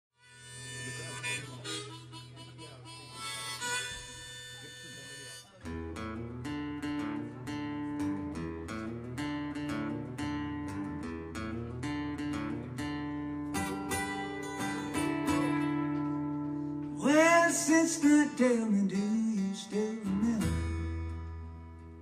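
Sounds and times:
harmonica melody: 0.2s - 11.1s, 11.8s - 18.6s
strummed acoustic guitar: 0.2s - 22.0s.

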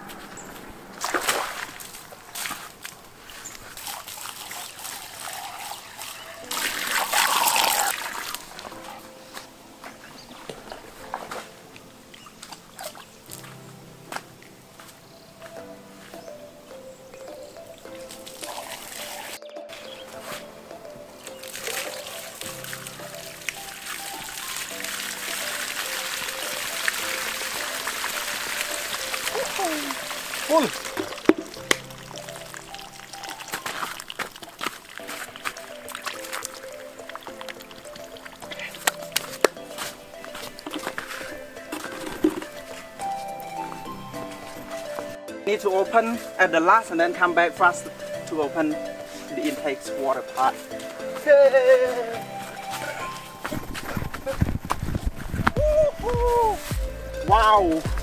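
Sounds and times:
background music: 0.0s - 58.0s
water pouring into pipe: 3.4s - 8.7s, 18.1s - 19.4s, 21.3s - 39.5s.

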